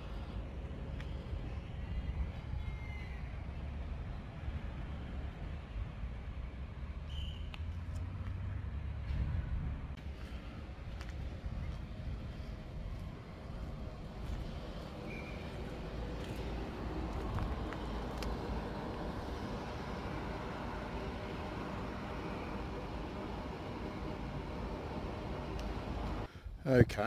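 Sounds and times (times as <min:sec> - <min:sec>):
low outdoor rumble: 0:00.0 - 0:27.0.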